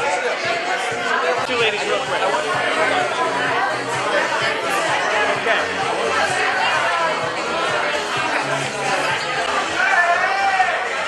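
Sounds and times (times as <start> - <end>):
background music: 0.0 - 11.0
crowd chattering: 0.0 - 11.0.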